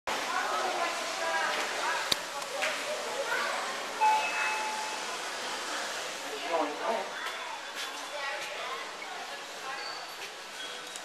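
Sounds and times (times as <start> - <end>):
elevator chime ding: 4.0 - 5.1.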